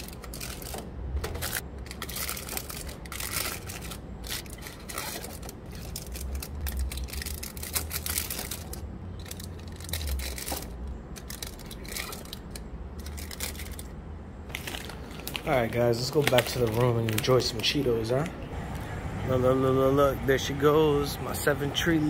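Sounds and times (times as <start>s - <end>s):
plastic pouches crinkling: 0.0s - 18.3s.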